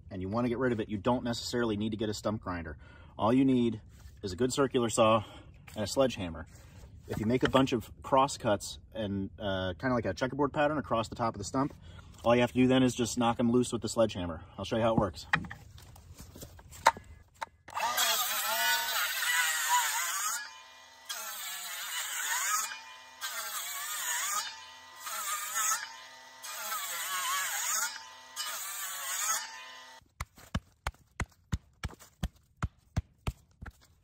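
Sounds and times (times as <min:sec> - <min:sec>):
circular saw cutting wood: 0:17.7 - 0:30.0.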